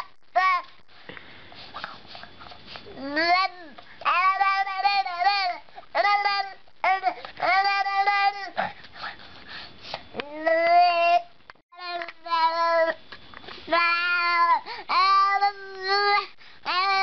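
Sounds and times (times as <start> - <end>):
baby vocalizing sing-song: 2.8 - 8.8, 10.2 - 13.0, 13.6 - 17.0.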